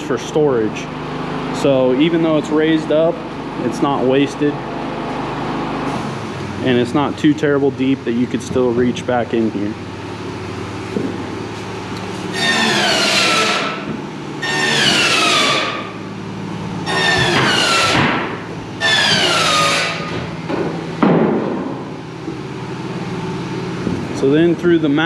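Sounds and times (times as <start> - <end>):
power tool whine falling in pitch: 12.3 - 20.4
loud knock: 16.9 - 18.5, 19.9 - 21.8.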